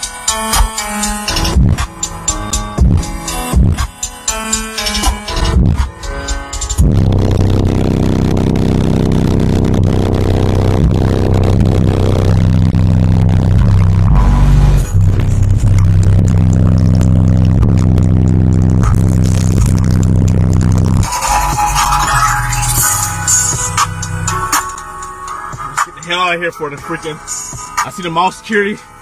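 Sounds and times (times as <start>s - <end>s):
bass-heavy music through subwoofers: 0.0s - 29.0s.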